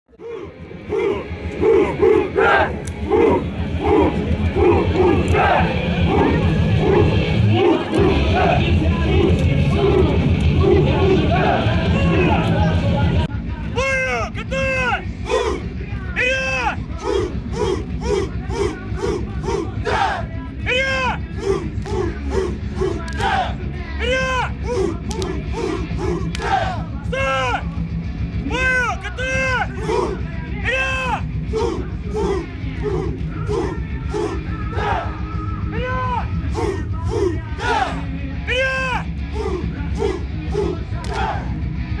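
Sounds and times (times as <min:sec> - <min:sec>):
soldiers shouting in rhythm: 0:00.1 - 0:13.2, 0:13.8 - 0:27.7, 0:28.4 - 0:41.7.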